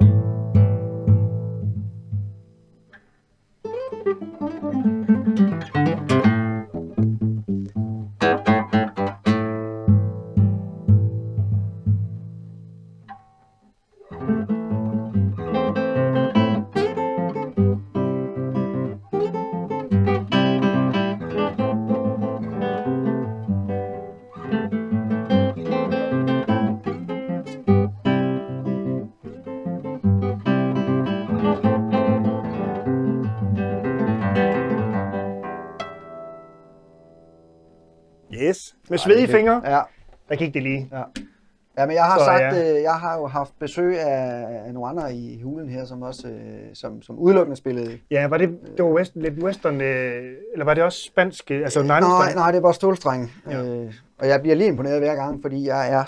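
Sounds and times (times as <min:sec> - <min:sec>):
fingerpicked classical guitar: 0:00.0 - 0:38.3, 0:38.9 - 0:41.4, 0:42.0 - 0:42.8.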